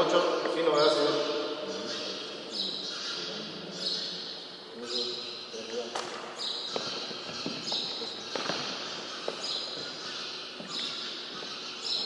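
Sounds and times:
footsteps on gym floor: 6.0s - 12.0s.

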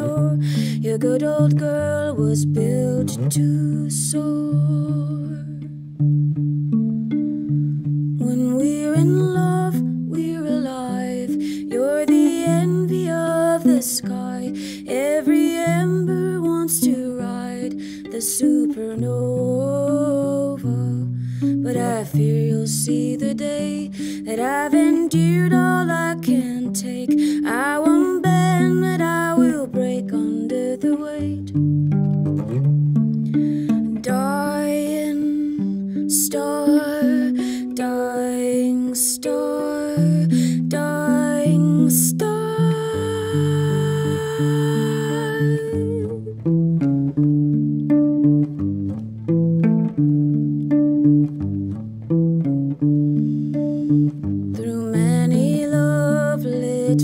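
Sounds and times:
slow solo guitar: 0.0s - 57.0s.

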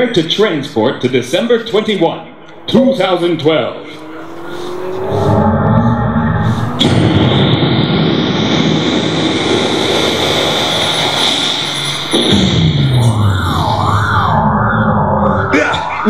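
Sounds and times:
falling wind-down: 0.3s - 16.0s
warbling alarm: 1.3s - 16.0s
rising whoosh: 1.7s - 16.0s.

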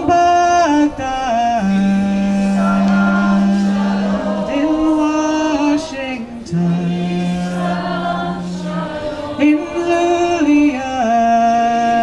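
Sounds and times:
person singing slow melody: 0.0s - 12.0s.

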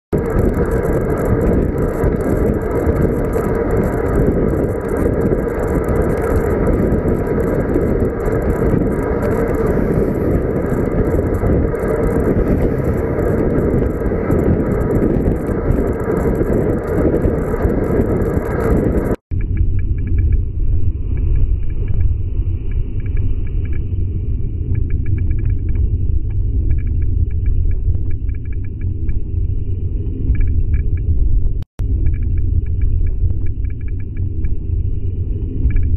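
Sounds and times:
wind and road noise: 0.1s - 35.9s.

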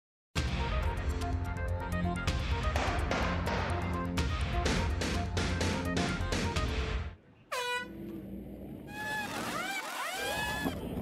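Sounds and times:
pneumatic impact wrenches whining: 8.9s - 10.8s.

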